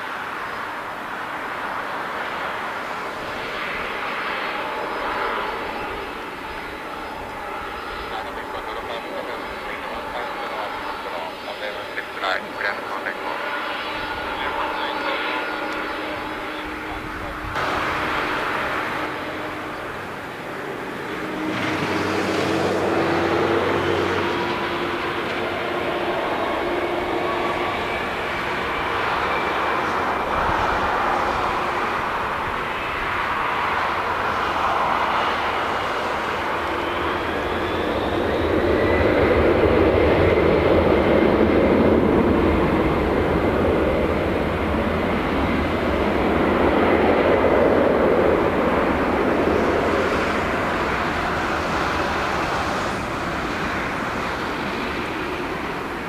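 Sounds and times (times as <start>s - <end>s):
jet engines at takeoff thrust: 0.0s - 56.0s.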